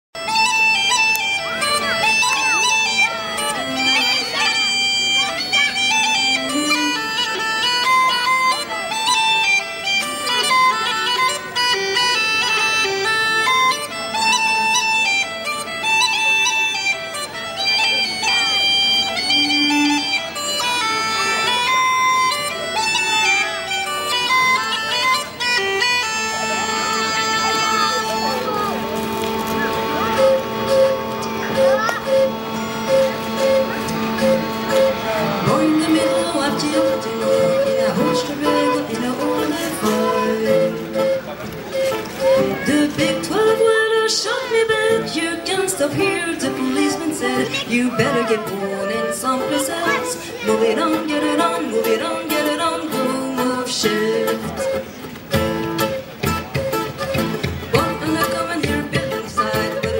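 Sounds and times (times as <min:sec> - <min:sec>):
fiddle: 0:00.2 - 0:59.9
uilleann pipes with drone: 0:16.9 - 0:52.8.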